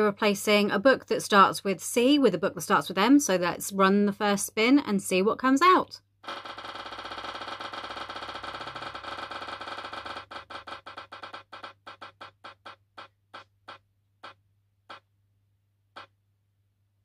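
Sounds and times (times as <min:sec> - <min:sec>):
prize wheel ticking: 0:06.3 - 0:12.8.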